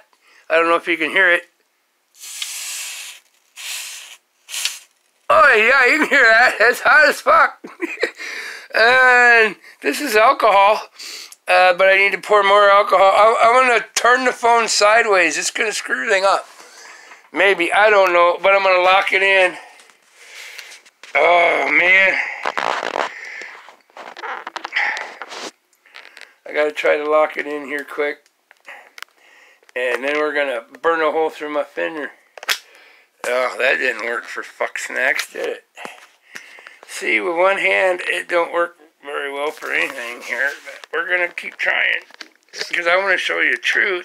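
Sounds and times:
soldering iron sizzling on wet cloth: 2.2s - 5.1s
breathy exhales: 22.2s - 23.7s, 24.7s - 25.3s.

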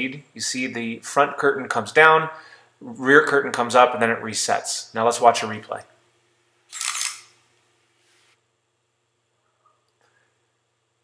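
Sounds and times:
camera shutter clack: 6.7s - 7.3s.

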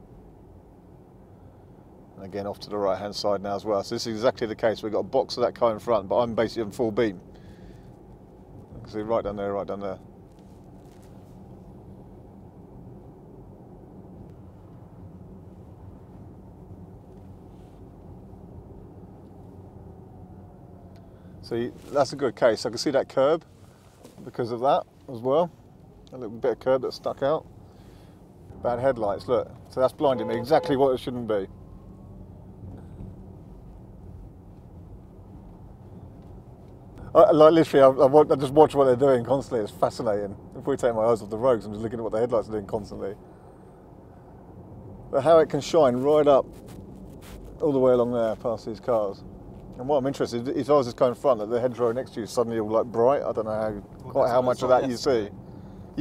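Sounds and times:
faint hum: 0.0s - 56.0s
road and tyre noise in car: 0.0s - 56.0s.

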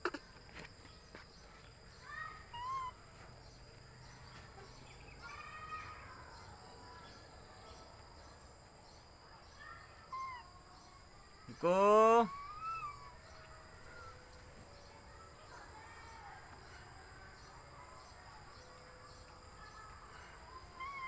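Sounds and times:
high-pitched chirping animal calls: 2.4s - 3.0s, 10.0s - 10.5s, 11.5s - 14.2s, 20.6s - 21.0s.

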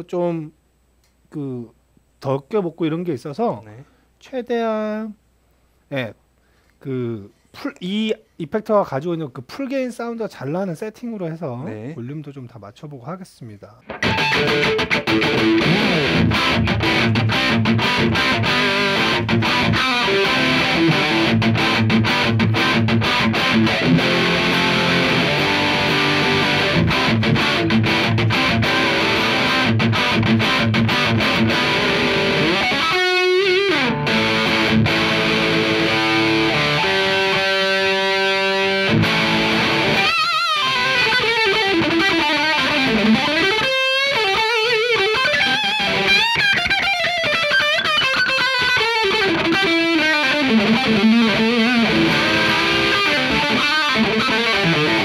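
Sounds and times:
distorted electric guitar riff: 13.8s - 55.0s.

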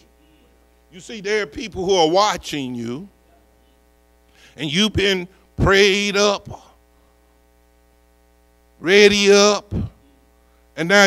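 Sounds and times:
faint electrical hum: 0.0s - 11.0s
man speaking over microphone: 0.9s - 3.1s, 4.6s - 6.8s, 8.8s - 10.0s, 10.8s - 11.0s.

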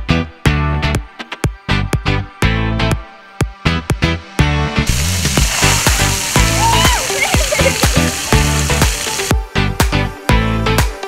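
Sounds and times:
hissing wash of noise: 4.9s - 9.3s.

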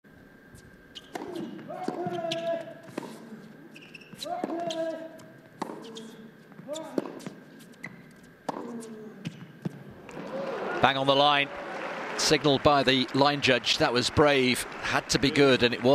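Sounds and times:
racket striking tennis ball: 1.0s - 3.3s, 4.3s - 6.2s, 6.9s - 7.4s, 8.4s - 9.8s.

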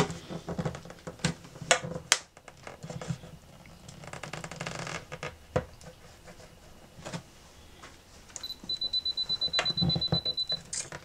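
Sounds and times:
high beeping tone: 8.4s - 10.6s.

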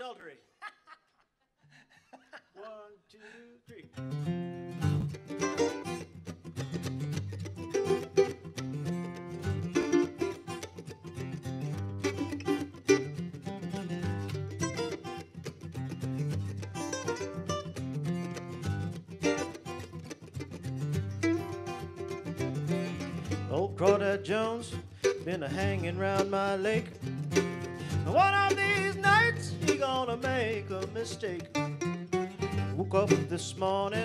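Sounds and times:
acoustic guitar and mandolin: 3.8s - 34.0s.

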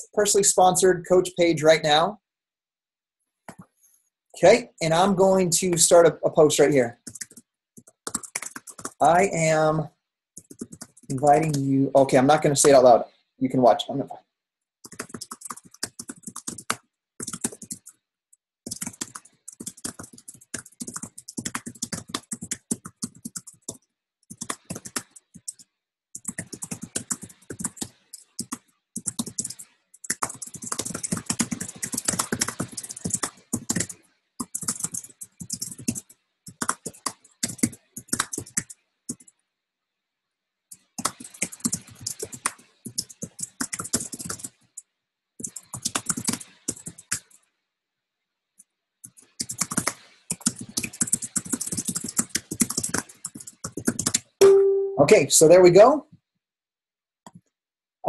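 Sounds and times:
fast keyboard typing: 6.9s - 9.6s, 10.4s - 11.6s, 14.8s - 18.0s, 18.7s - 39.4s, 40.7s - 47.4s, 49.0s - 54.5s.

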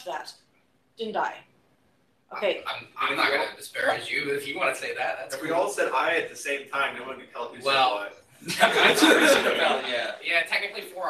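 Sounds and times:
people speaking: 0.0s - 0.3s, 1.0s - 1.4s, 2.3s - 11.0s
people laughing: 8.4s - 10.2s.

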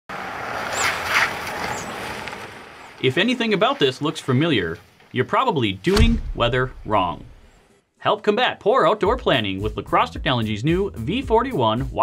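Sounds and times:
car tyres on slushy road: 0.1s - 5.2s.

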